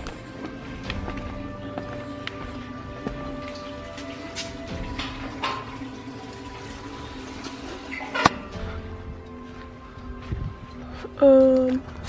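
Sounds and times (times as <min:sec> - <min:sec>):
light footsteps: 0:00.0 - 0:04.6
background music with held notes: 0:00.0 - 0:12.0.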